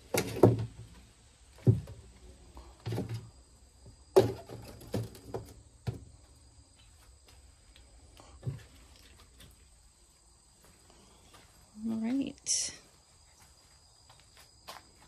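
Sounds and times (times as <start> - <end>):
insect chorus: 0.0 - 15.0
hollow knocks and clunks on a table: 0.1 - 0.9.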